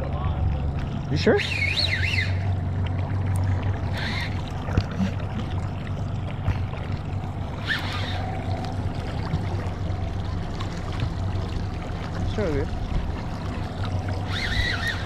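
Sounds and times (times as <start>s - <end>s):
outboard motor running: 0.0s - 15.0s
water around hull: 0.0s - 15.0s.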